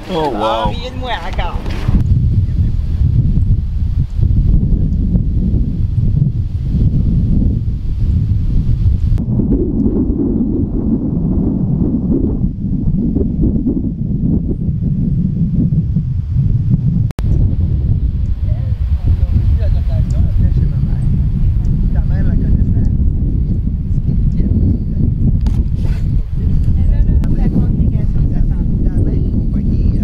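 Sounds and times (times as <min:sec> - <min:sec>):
wind buffeting microphone: 0:00.0 - 0:30.0.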